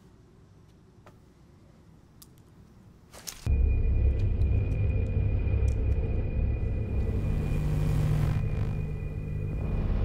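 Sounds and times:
deep rumbling drone: 3.5 - 10.0.

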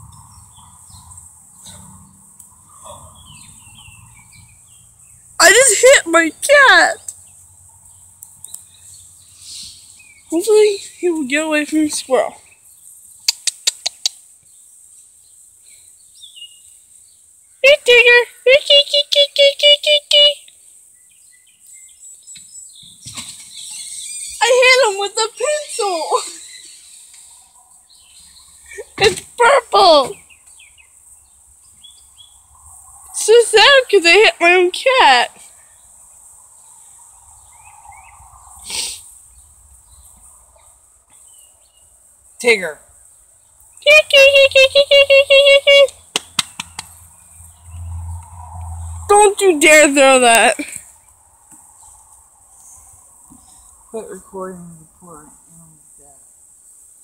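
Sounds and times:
baby squirrel squealing: 23.5 - 27.0
short sharp puff of noise: 38.6 - 39.2.

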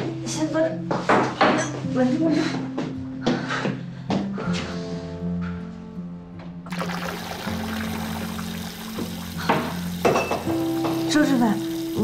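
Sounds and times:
soft background music: 0.0 - 12.0
tap water running into bath: 6.7 - 12.0.

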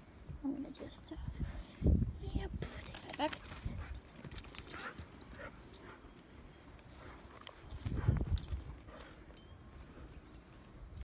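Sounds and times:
small clicks and jingles: 3.0 - 6.0, 7.3 - 9.6.

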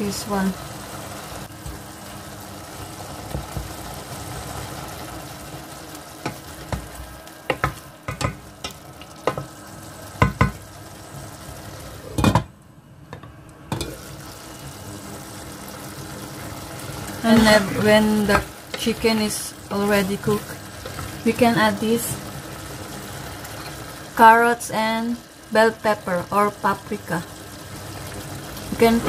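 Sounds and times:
chicken sizzling in a pot: 0.0 - 12.6, 13.7 - 29.0
wooden spoon knocking on pot: 7.5 - 9.5, 10.2 - 10.6.

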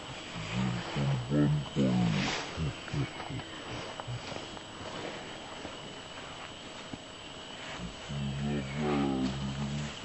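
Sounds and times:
low-pitched human voice: 0.4 - 3.4, 7.8 - 10.0.

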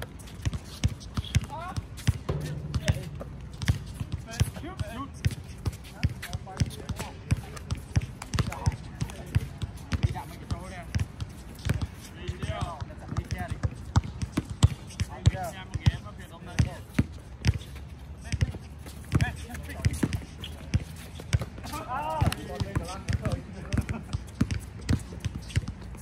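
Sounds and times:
basketball bouncing on hard court: 0.4 - 10.3, 10.9 - 16.0, 22.3 - 25.8.

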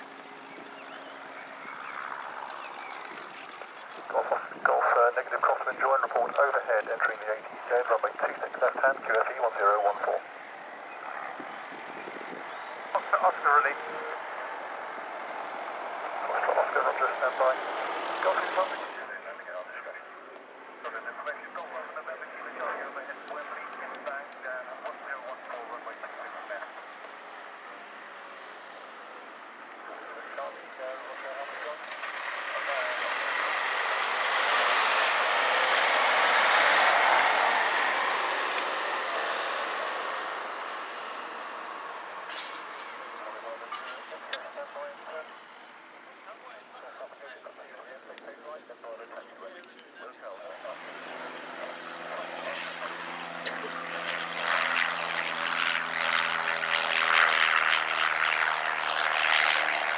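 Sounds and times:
light aircraft engine: 0.0 - 59.9
people talking: 4.1 - 10.2, 13.0 - 14.2, 16.2 - 17.6, 18.2 - 20.1, 20.9 - 26.7, 29.9 - 31.8, 32.4 - 33.2, 43.1 - 45.3, 46.3 - 50.8.

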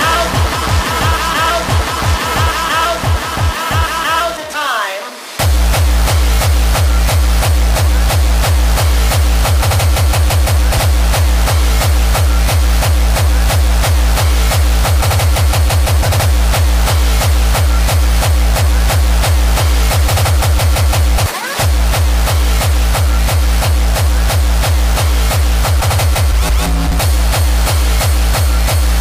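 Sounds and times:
hardcore electronic dance music: 0.0 - 29.0.

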